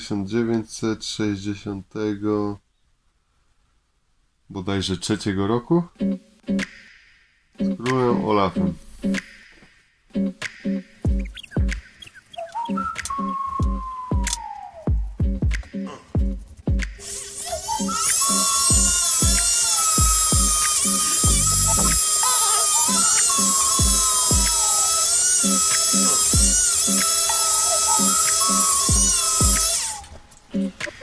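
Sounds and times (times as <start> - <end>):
background music with steady beat: 5.9 - 31.0
rotary tool grinding a coin: 17.0 - 30.0.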